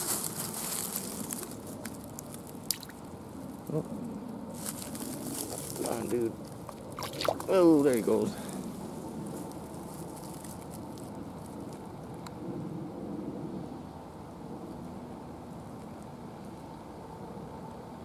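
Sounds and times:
outdoor rumbling noise: 0.0s - 18.0s.

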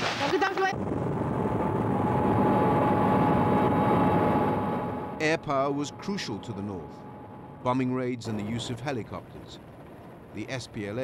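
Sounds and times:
high engine whine: 0.4s - 11.0s
helicopter engine and rotor din: 1.2s - 11.0s.

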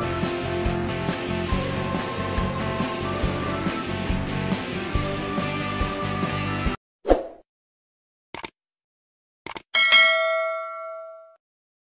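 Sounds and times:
notification bell ding: 9.8s - 11.4s.

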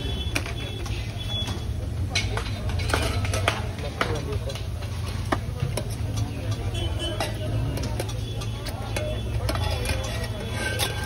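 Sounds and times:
traffic hum: 0.0s - 11.0s
metal lids clinking on containers: 6.4s - 11.0s.

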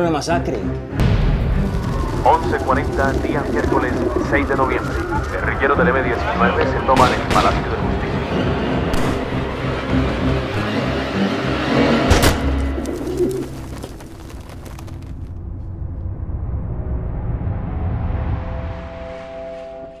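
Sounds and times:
loud dense din: 1.0s - 10.5s.

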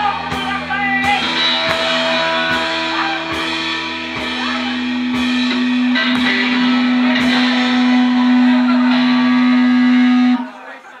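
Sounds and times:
drum kit crashes: 0.0s - 10.5s
guitar and bass held chord: 0.0s - 10.6s.

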